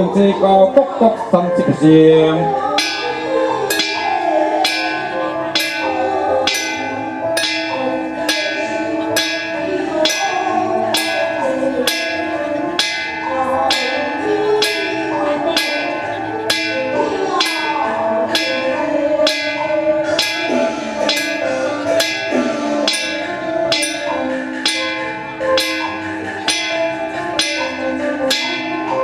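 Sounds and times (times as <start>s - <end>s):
people chanting together: 0.0s - 29.0s
small metal gong struck: 2.7s - 29.0s.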